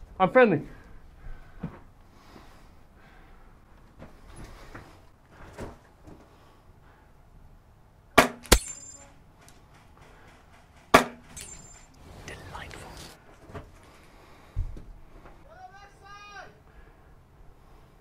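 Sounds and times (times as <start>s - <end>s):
airsoft rifle shots: 8.2s - 8.8s, 9.8s - 11.4s.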